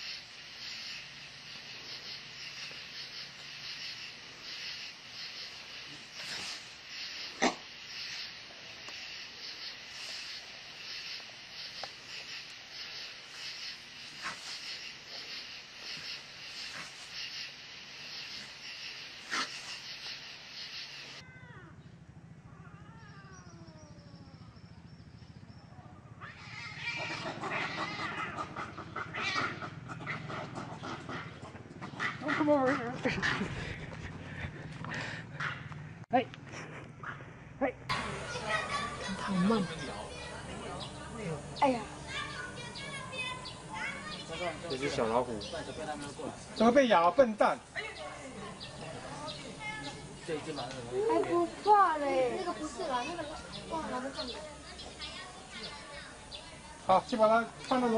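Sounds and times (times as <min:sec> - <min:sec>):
steady high hiss with pulse: 0:00.0 - 0:21.2
cats yowling: 0:22.4 - 0:24.4, 0:26.2 - 0:31.2.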